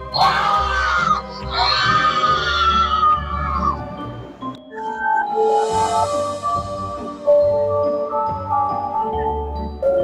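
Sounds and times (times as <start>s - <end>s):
background music: 0.0s - 10.0s
high-pitched screams: 0.1s - 3.8s.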